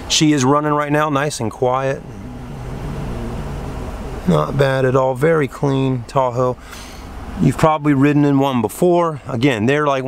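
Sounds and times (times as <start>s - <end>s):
car engine idling: 1.6s - 6.2s.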